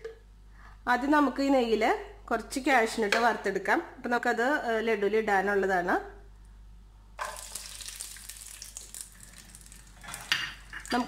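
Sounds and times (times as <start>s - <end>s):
nuts sizzling in hot fat: 7.2s - 11.0s.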